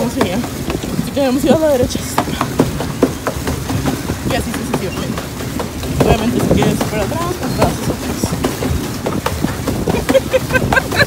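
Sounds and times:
pedal boat paddle wheel clattering: 0:00.0 - 0:11.0.

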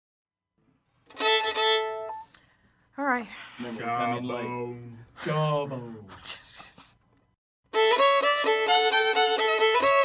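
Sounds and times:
bowed fiddle steady note: 0:01.0 - 0:02.4, 0:07.7 - 0:10.0.

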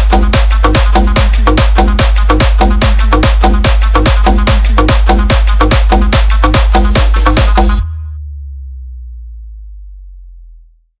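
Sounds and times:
deep sub-bass tone: 0:00.0 - 0:11.0.

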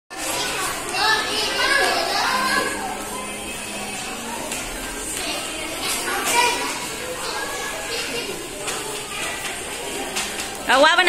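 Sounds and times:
young children chattering: 0:00.1 - 0:11.0.

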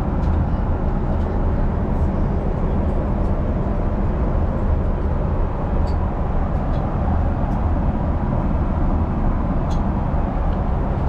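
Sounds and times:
jet engine cabin rumble: 0:00.0 - 0:11.0.

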